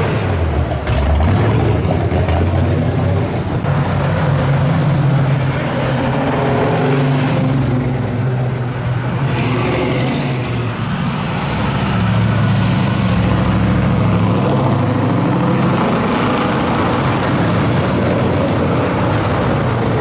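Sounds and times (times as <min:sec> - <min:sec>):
car engines driving past: 0:00.0 - 0:20.0.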